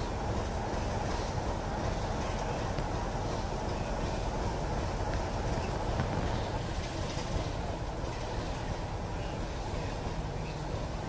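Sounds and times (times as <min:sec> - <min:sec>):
diesel locomotive idling: 0:00.0 - 0:11.0.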